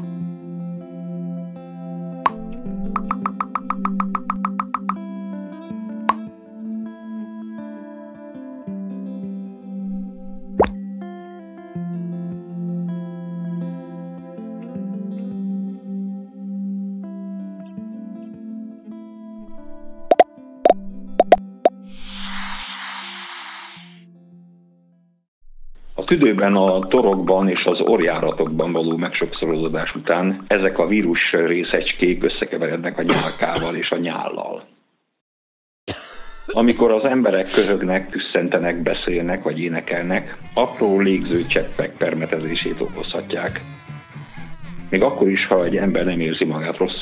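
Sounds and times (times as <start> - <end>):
cartoon pops rising in pitch: 3.0 - 5.0, 21.2 - 21.8
cartoon pop: 10.6 - 10.8
hissing whoosh: 21.9 - 24.0
soft plucked-string music: 26.2 - 31.2.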